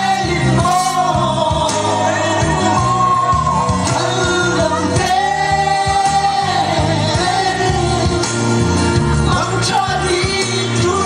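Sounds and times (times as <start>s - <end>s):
man singing into a microphone: 0.0s - 11.0s
music with repeating bass line: 0.0s - 11.0s.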